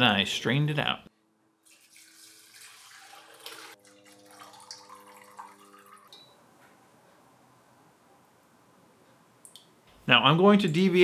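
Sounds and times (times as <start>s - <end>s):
liquid trickling and dripping: 1.6s - 6.4s.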